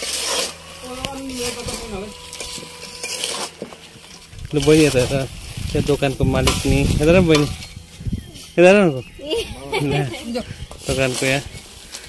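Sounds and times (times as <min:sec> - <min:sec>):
woman talking: 0:00.8 - 0:02.2.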